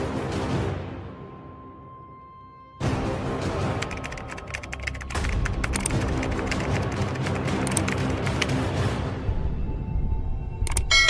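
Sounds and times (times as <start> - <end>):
background music: 0.0 - 11.0
keyboard key clicks: 3.8 - 8.6, 10.7 - 10.9.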